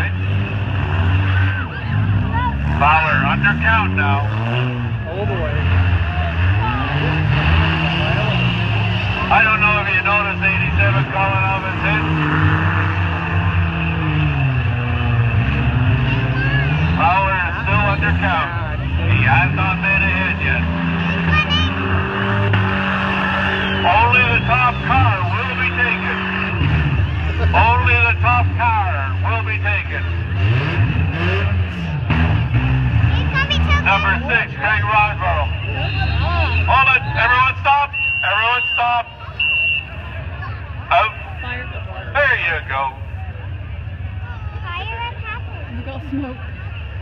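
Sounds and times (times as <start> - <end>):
car engines revving: 0.0 - 47.0
voices: 0.0 - 47.0.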